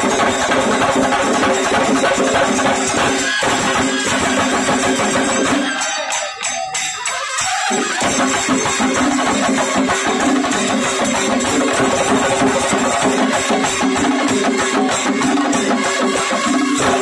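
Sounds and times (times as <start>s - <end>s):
drums in fast rhythm: 0.0s - 17.0s.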